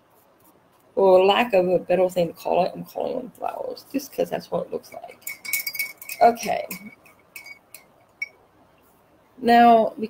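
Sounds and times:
painting tools clinking on palette: 0:04.9 - 0:08.4.

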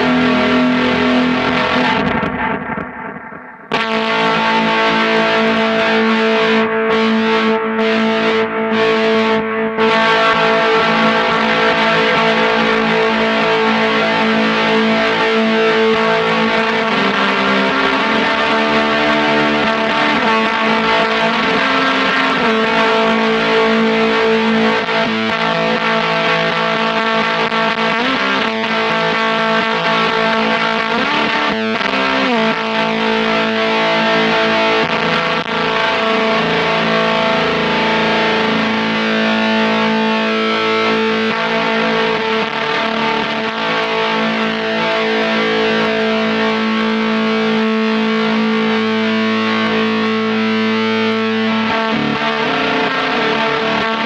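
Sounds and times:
fuzzed electric guitar: 0:00.0 - 0:54.0.

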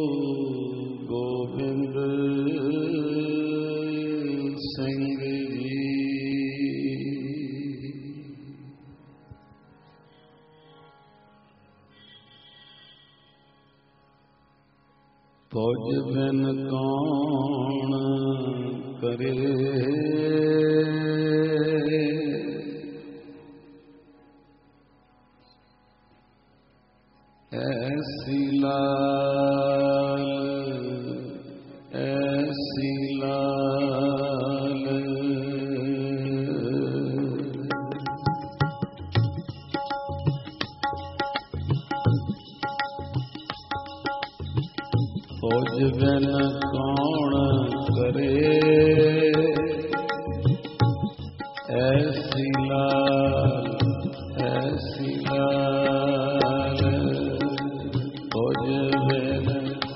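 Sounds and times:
man chanting: 0:00.0 - 0:09.1, 0:15.5 - 0:24.0, 0:27.5 - 0:42.6, 0:44.1 - 0:59.9
group of men singing chant: 0:45.4 - 0:50.7, 0:51.6 - 0:59.9.

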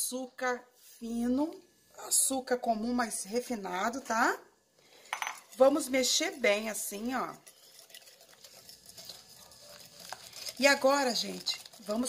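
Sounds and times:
whisk scraping glass bowl: 0:05.0 - 0:12.0.

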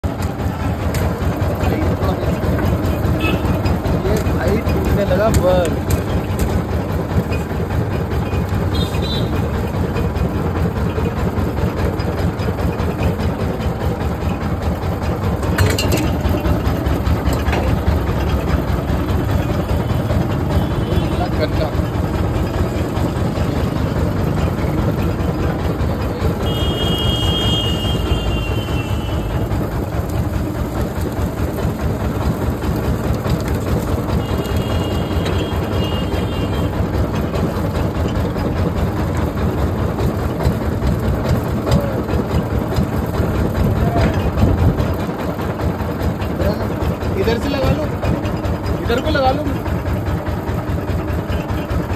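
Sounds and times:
juice crushing machine droning: 0:00.0 - 0:51.9.

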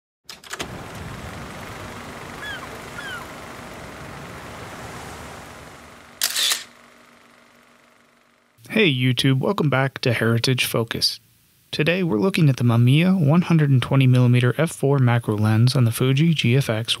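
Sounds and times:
steady background wash: 0:00.3 - 0:08.9
short falling chirps: 0:02.4 - 0:03.4
camera shutter release: 0:06.2 - 0:06.8.

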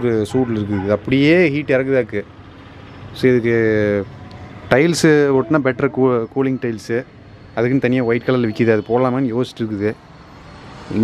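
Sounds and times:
man speaking: 0:00.0 - 0:02.3, 0:03.2 - 0:04.1, 0:04.7 - 0:10.0
faint background noise: 0:00.0 - 0:11.0.

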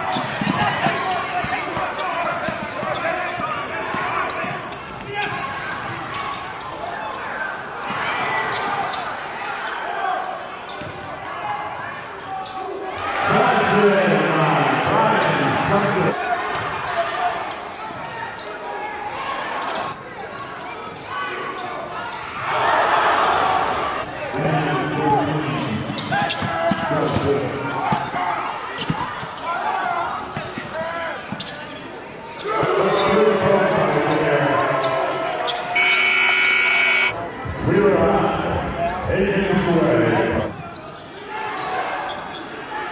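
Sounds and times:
scoreboard horn: 0:35.8 - 0:37.2.

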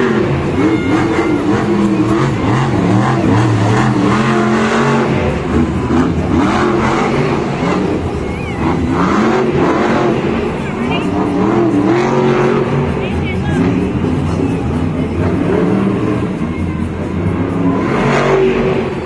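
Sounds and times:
monster truck engine revving: 0:00.0 - 0:19.0.

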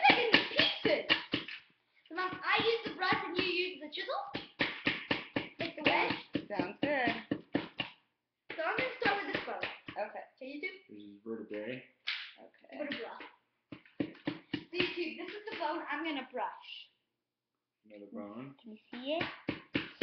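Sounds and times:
hand tool tapping plaster: 0:00.0 - 0:03.7, 0:04.3 - 0:07.9, 0:08.5 - 0:10.0, 0:12.9 - 0:15.8, 0:18.9 - 0:20.0.

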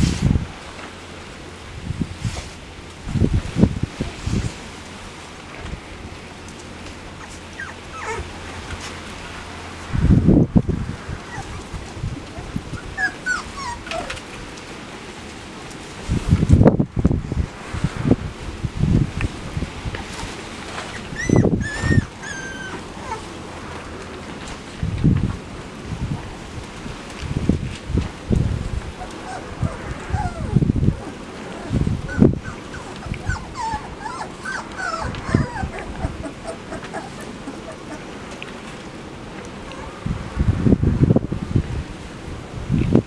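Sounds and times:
puppies whimpering and yipping: 0:07.2 - 0:09.1, 0:11.2 - 0:14.4, 0:20.8 - 0:23.4, 0:29.0 - 0:38.4.

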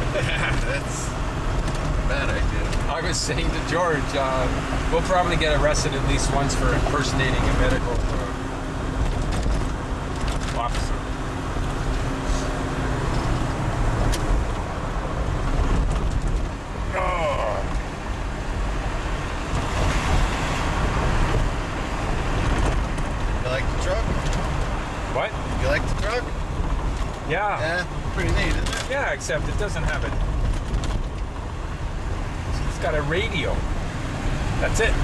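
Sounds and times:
truck engine and road rumble: 0:00.0 - 0:35.0.

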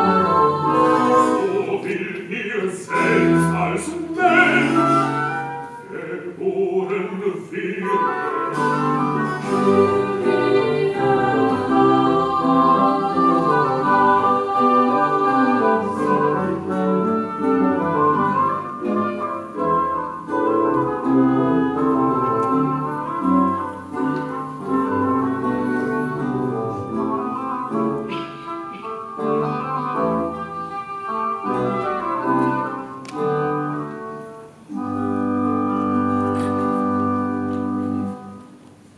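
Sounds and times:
boys' choir singing: 0:00.0 - 0:16.7
baroque orchestra with harpsichord: 0:00.0 - 0:38.4.

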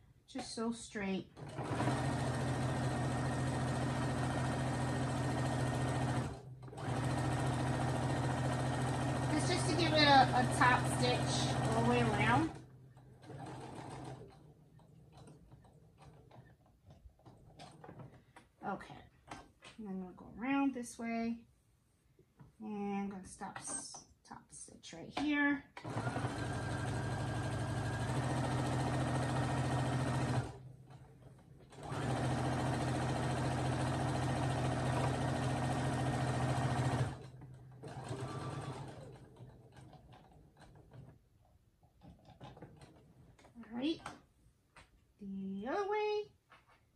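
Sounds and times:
sewing machine stitching: 0:00.4 - 0:19.7, 0:25.2 - 0:44.2.

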